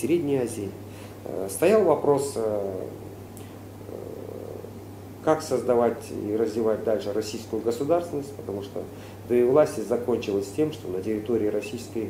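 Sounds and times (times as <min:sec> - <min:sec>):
low electrical hum: 0:00.0 - 0:12.0
man murmuring: 0:03.8 - 0:04.8.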